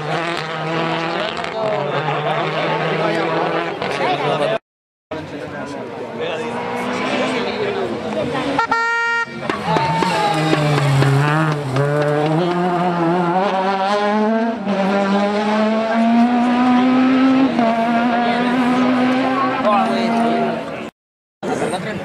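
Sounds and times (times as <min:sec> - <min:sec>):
rally car engine revving: 0:00.0 - 0:04.6, 0:06.0 - 0:08.6, 0:09.4 - 0:20.9.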